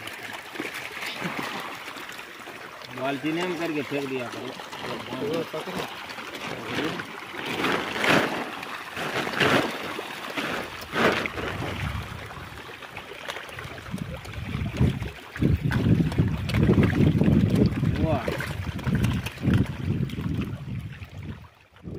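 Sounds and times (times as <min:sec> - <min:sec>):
fish splashing at water surface: 0:00.0 - 0:21.6
deep splashing and rumbling: 0:02.9 - 0:21.9.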